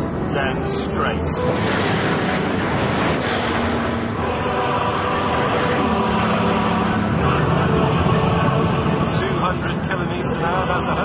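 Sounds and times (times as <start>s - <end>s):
car engine accelerating: 0.0s - 11.0s
car engine running steadily: 0.0s - 11.0s.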